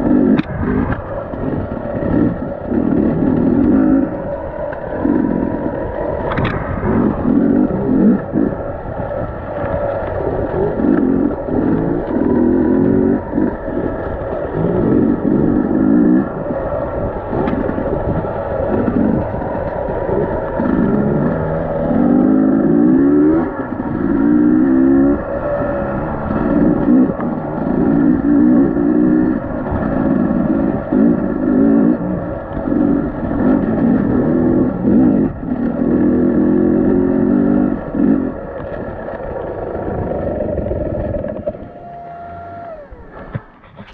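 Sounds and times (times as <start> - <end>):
dirt bike engine revving: 0.0 - 43.9.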